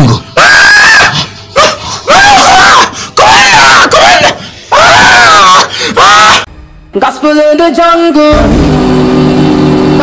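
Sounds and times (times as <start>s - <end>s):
person screaming: 0.4s - 1.2s, 2.1s - 6.5s.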